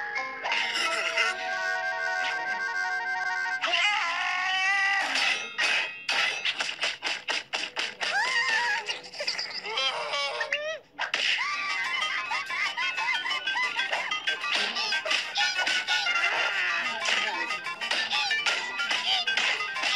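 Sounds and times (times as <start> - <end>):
cartoon score music: 0.0 - 19.9.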